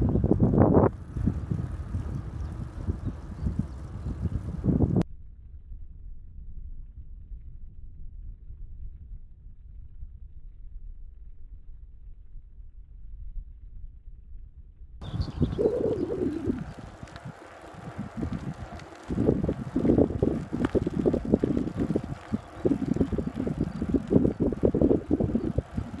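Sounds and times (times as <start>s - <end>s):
wind buffeting microphone: 0.0s - 5.0s, 15.0s - 26.0s.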